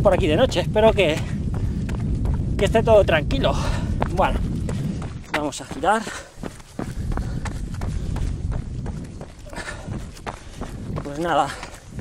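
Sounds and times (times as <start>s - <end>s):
low microphone rumble: 0.0s - 5.8s, 6.4s - 12.0s
running footsteps on dirt: 0.0s - 12.0s.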